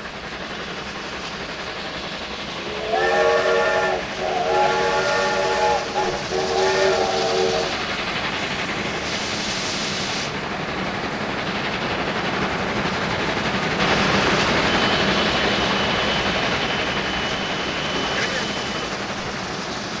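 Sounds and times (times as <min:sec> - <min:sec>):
train steam hiss and running: 0:00.0 - 0:20.0
steam locomotive whistle: 0:02.6 - 0:08.0.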